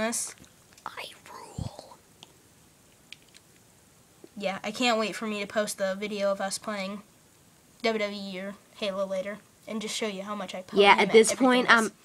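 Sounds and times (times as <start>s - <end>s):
faint whispery voice: 0.8s - 2.0s.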